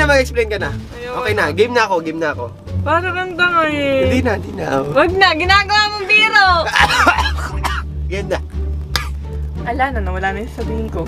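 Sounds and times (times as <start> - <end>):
man talking: 0.0 - 2.5, 4.0 - 5.0, 6.6 - 8.4
background music: 0.0 - 11.0
man coughing: 6.7 - 7.9, 8.9 - 9.2.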